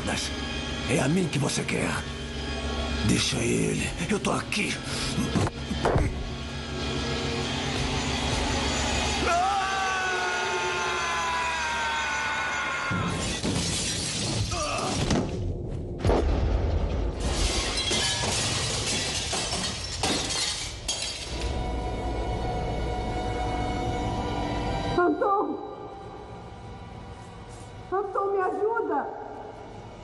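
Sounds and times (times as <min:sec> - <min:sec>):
film score music: 0:00.0 - 0:13.6, 0:14.3 - 0:17.4, 0:21.3 - 0:30.0
glass shattering and crashing: 0:13.0 - 0:15.0, 0:17.2 - 0:21.4.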